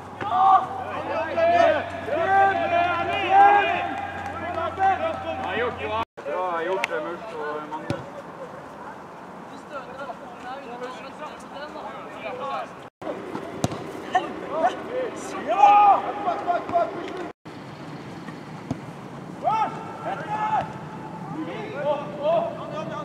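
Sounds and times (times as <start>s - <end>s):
footballers shouting: 0.0s - 6.0s, 14.0s - 17.2s, 19.4s - 23.0s.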